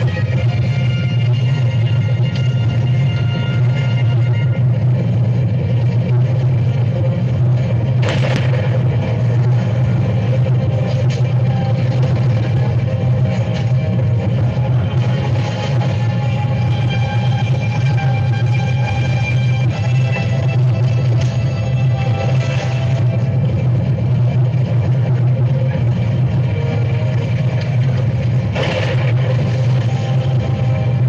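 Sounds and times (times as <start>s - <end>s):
rumble of stampeding hooves: 0.0s - 31.0s.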